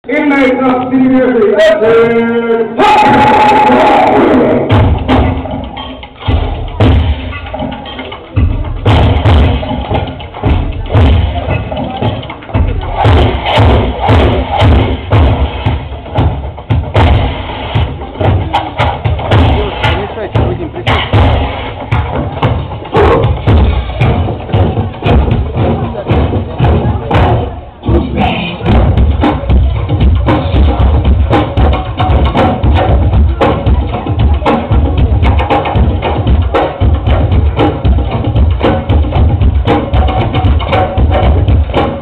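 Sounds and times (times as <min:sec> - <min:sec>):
dance music over loudspeakers: 0:00.0 - 0:42.0.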